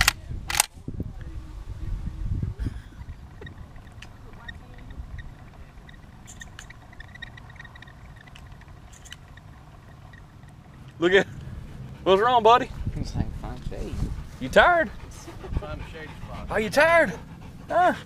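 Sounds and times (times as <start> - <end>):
wind rumble on microphone: 0.0 - 10.8, 11.5 - 17.6
spinning decoy whirring: 3.1 - 10.7.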